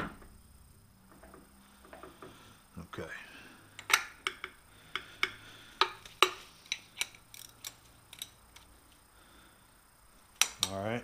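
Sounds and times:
wrench clicking on metal: 3.8 - 8.7.

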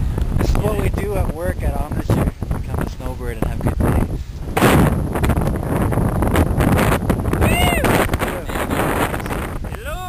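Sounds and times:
wind buffeting microphone: 0.0 - 10.0
person calling out: 7.4 - 8.6, 9.7 - 10.0.

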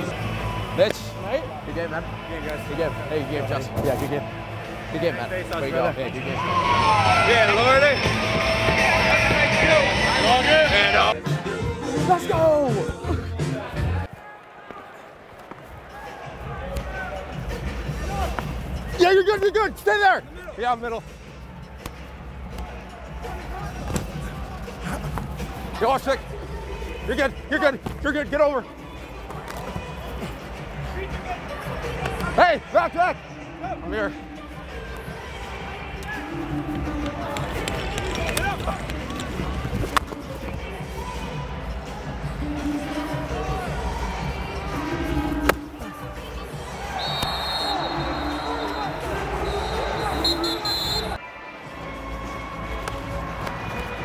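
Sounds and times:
players shouting: 0.0 - 11.2, 42.4 - 51.2
background music: 0.0 - 54.0
crowd murmur: 20.3 - 27.8, 28.6 - 54.0.

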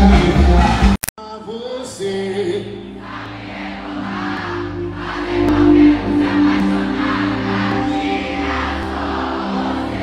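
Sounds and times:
crowd cheering and singing: 0.0 - 10.0
live band music: 4.0 - 10.0.

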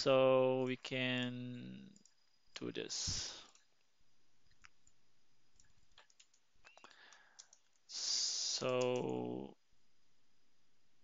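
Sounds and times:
computer mouse and keyboard clicks: 5.6 - 7.8.

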